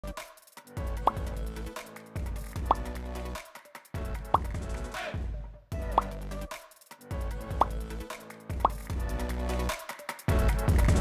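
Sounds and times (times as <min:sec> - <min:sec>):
deep bass beat: 0:00.8 - 0:01.6, 0:02.3 - 0:03.0, 0:04.0 - 0:06.4.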